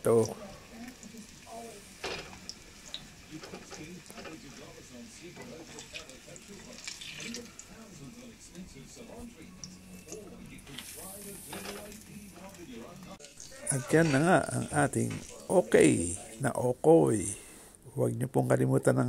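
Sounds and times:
hot oil sizzling: 0:00.0 - 0:17.4
spatula scraping metal pan: 0:13.5 - 0:15.4.

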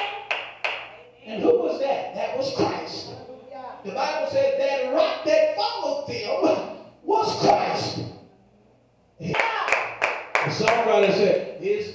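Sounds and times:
hand clapping: 0:00.0 - 0:00.9, 0:09.3 - 0:11.2.

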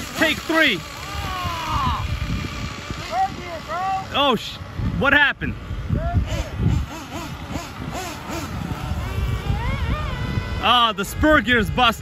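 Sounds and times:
small engine buzzing: 0:00.0 - 0:12.0
wind on microphone: 0:01.0 - 0:12.0.

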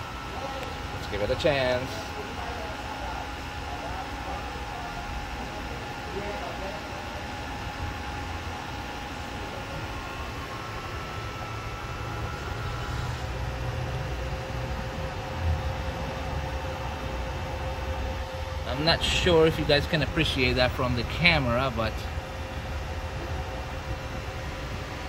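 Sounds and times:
faint whining water pumps: 0:00.0 - 0:25.0.

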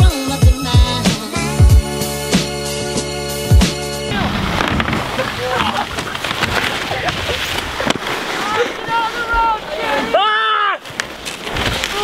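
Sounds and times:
music with a beat: 0:00.0 - 0:04.0
wind on microphone: 0:04.1 - 0:08.1
skis sliding over snow: 0:04.1 - 0:12.0.

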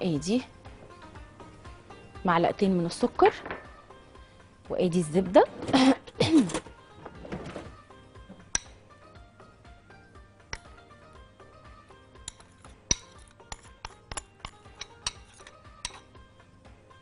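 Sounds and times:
faint background music: 0:00.0 - 0:17.0
metal spoon clinking on glass bowl: 0:08.5 - 0:08.8, 0:10.5 - 0:10.8, 0:12.2 - 0:16.1.

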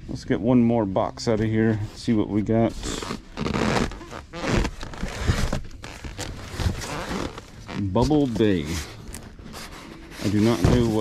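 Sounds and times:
cardboard boxes scraping: 0:01.6 - 0:11.0
plastic wrap crinkling: 0:02.8 - 0:11.0.

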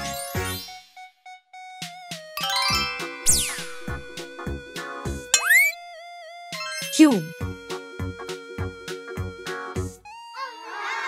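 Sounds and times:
upbeat children's music: 0:00.0 - 0:01.0, 0:01.7 - 0:05.8, 0:06.4 - 0:11.0.

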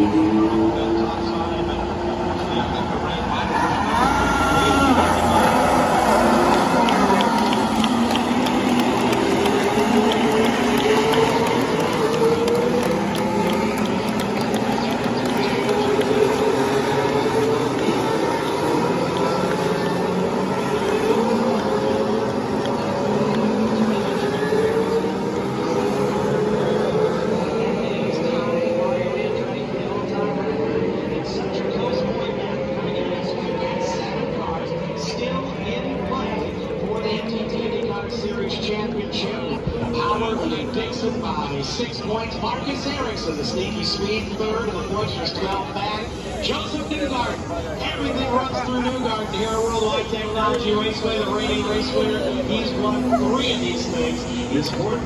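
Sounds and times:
race car engines at low speed: 0:00.0 - 0:55.0.

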